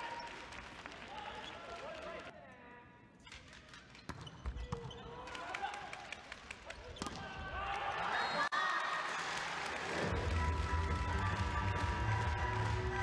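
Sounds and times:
sports hall crowd noise: 0.0 - 13.0.

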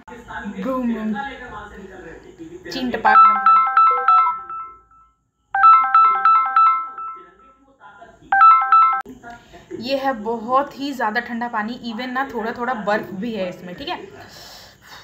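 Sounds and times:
phone ringtone: 3.0 - 7.6, 8.3 - 9.1.

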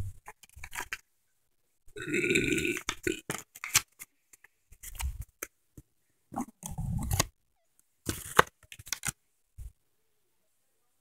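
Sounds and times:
person burping: 2.0 - 3.3.

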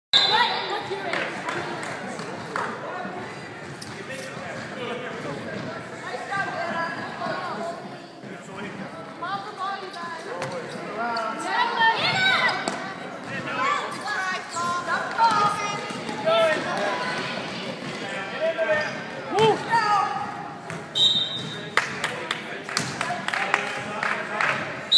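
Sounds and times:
spectators chatting and shouting: 0.2 - 24.9.

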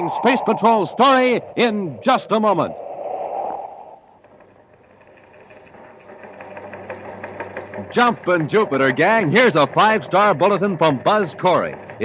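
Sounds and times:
teletype machine clattering: 5.0 - 12.0.

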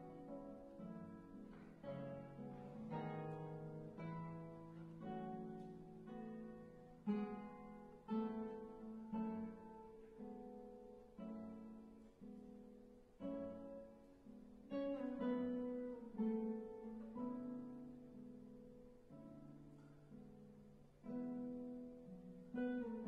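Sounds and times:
classical guitars playing: 0.0 - 23.0.

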